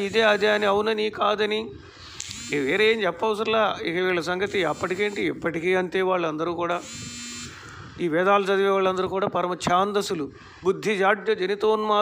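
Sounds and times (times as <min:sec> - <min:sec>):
electric buzz: 0:00.0 - 0:00.9, 0:02.1 - 0:03.2, 0:04.2 - 0:05.5, 0:06.7 - 0:07.9
man's voice: 0:00.0 - 0:01.8, 0:02.5 - 0:06.9, 0:08.0 - 0:12.0.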